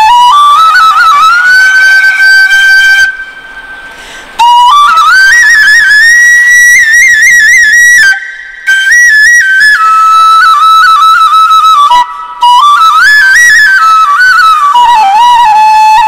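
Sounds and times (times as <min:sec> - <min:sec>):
solo bamboo flute melody: 0:00.0 - 0:16.0.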